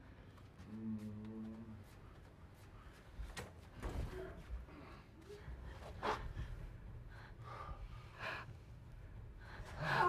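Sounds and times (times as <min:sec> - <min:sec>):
low room hum: 0:00.0 - 0:10.0
people breathing and gasping: 0:00.2 - 0:10.0.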